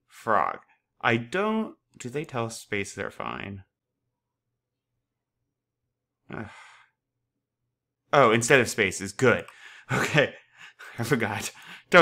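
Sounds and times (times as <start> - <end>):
man sighing: 6.3 - 6.9.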